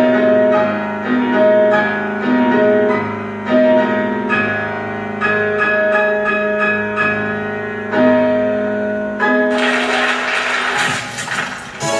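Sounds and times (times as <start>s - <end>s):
piano music through television speaker: 0.0s - 11.9s.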